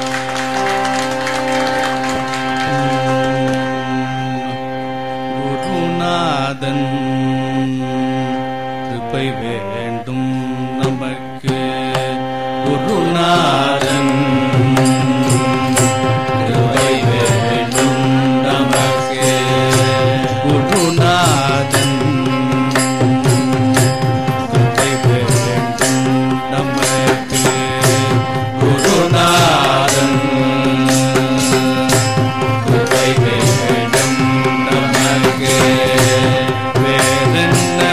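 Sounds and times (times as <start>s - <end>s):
chanted singing: 0.0s - 37.9s
sustained harmonium: 0.0s - 37.9s
violin: 0.0s - 37.9s
sharp percussion strokes: 13.4s - 37.9s.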